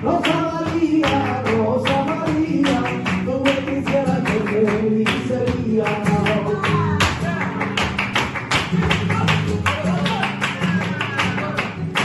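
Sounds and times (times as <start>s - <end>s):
guitar strummed percussively: 0.0s - 12.0s.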